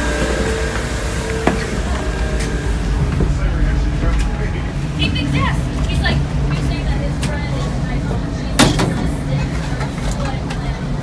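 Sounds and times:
footsteps: 0.0s - 7.4s
ship machinery rumble: 0.0s - 11.0s.

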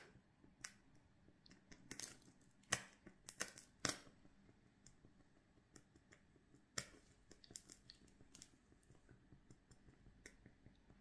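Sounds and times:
candle wax crackling: 0.0s - 11.0s.

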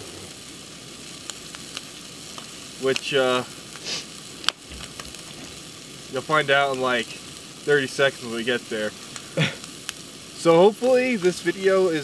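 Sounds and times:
food sizzling in a pan: 0.0s - 12.0s
faint pops: 3.8s - 6.0s.

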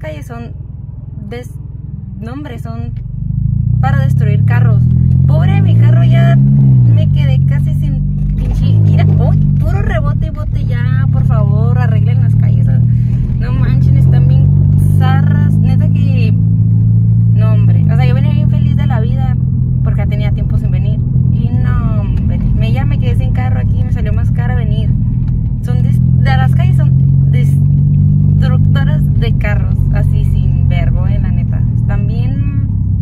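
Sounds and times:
car engine and road noise: 0.0s - 33.0s.

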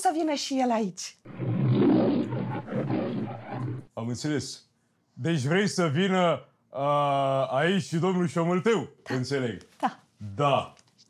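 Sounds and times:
rough pulsing roar: 1.3s - 3.9s
voices: 1.9s - 3.8s.

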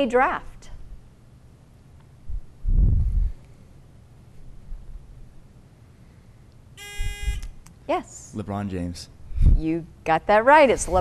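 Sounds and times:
faint studio room noise: 0.0s - 11.0s
quiz buzzer electronic tone: 6.8s - 7.6s.

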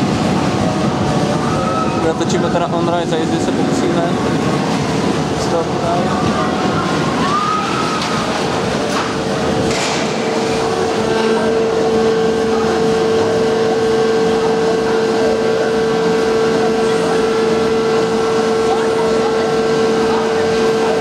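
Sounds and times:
roller coaster train running on track: 0.0s - 21.0s
steady mechanical lift hum: 0.0s - 21.0s.

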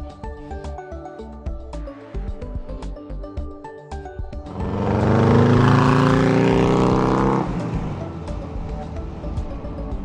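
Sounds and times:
buggy engine driving away: 4.5s - 10.0s.

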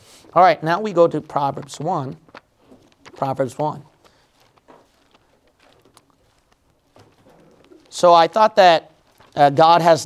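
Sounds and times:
thin pages being leafed through: 0.8s - 9.6s.

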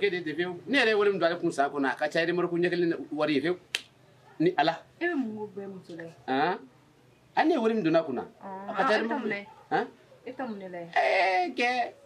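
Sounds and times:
person talking: 8.4s - 9.5s.

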